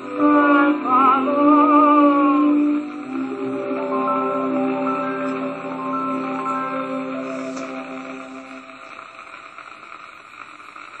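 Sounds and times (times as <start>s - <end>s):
record surface hiss and crackle: 0.0s - 11.0s.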